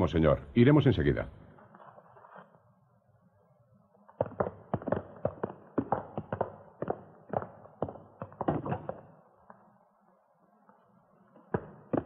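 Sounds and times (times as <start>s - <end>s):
hurried footsteps on hard floor: 4.2s - 9.0s.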